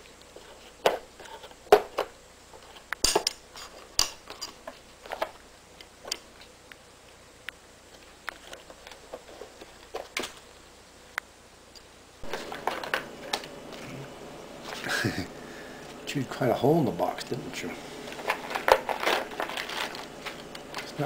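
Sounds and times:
cardboard rustling: 0:18.0 - 0:21.0.

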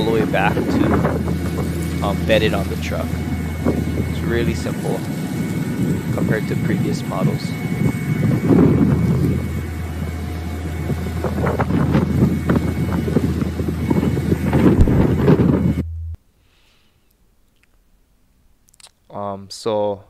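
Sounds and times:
hydraulic boom hum: 0:00.0 - 0:16.2
wind noise on microphone: 0:00.0 - 0:16.2.

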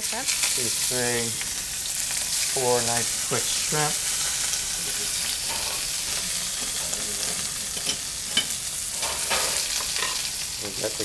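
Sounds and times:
shrimp sizzling in hot oil: 0:00.0 - 0:11.0.

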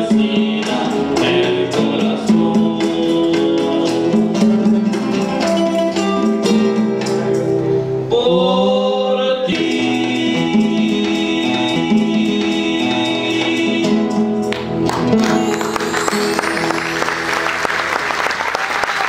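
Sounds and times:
men singing: 0:00.0 - 0:04.6, 0:08.1 - 0:14.4
shaken hand percussion: 0:00.0 - 0:07.6, 0:09.5 - 0:19.0
acoustic guitars strumming: 0:00.0 - 0:18.6.

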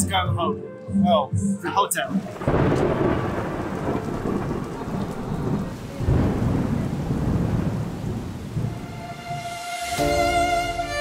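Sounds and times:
steady rain: 0:02.0 - 0:11.0
thunder rumbling: 0:02.1 - 0:09.5.

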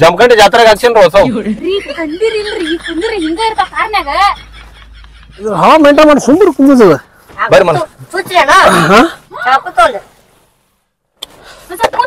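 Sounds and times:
voices: 0:00.0 - 0:10.4, 0:11.2 - 0:12.0.

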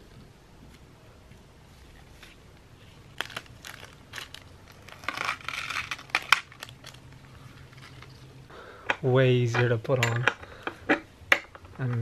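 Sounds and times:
plastic packaging crinkling: 0:02.8 - 0:08.3.

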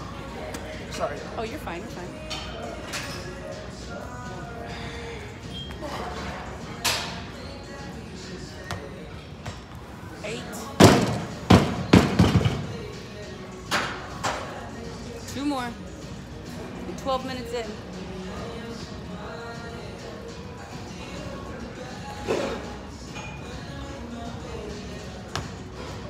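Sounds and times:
gym music: 0:00.0 - 0:26.0.

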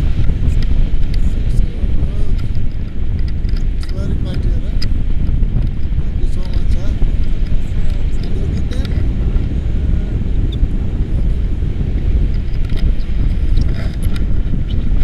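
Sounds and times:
wind buffeting microphone: 0:00.0 - 0:15.0.

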